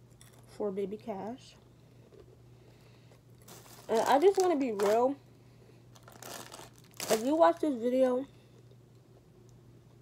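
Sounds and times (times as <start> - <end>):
packaging crinkling: 3.4 - 5.2, 5.9 - 7.8.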